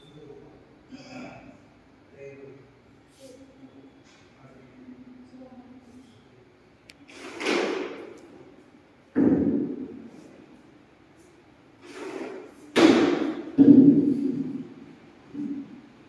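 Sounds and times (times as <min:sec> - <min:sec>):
loud thumps or bangs: 0:09.1 - 0:10.0, 0:12.7 - 0:14.8.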